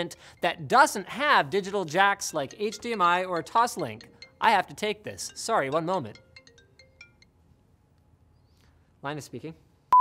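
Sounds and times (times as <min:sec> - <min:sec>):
smartphone ringtone: 0:06.1 - 0:07.4.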